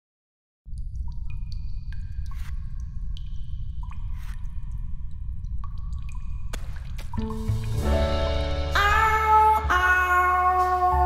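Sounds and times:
water drips pinging: 0.7s - 8.0s.

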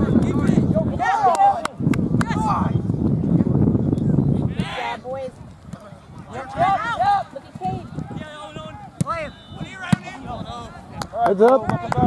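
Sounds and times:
people shouting: 6.3s - 11.3s
soccer ball kick thud: 8.9s - 10.2s.

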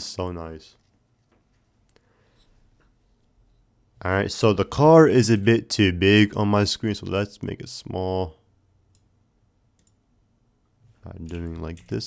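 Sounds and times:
faint computer mouse clicks: 9.8s - 10.0s.

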